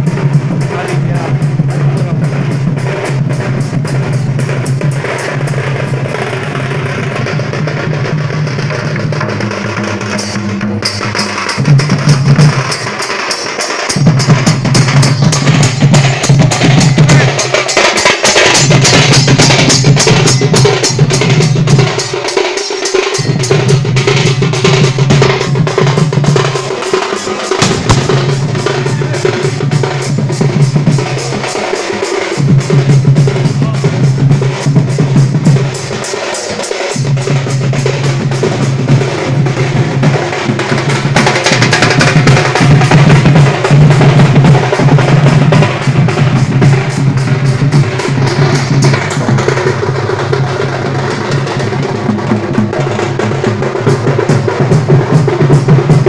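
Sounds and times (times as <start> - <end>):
barrel drums playing fast rhythm: 0.0 - 56.0.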